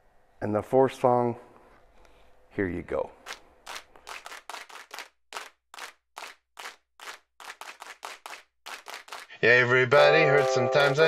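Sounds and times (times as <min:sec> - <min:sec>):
rhythmic handclaps: 0:03.2 - 0:09.4, 0:10.0 - 0:11.0.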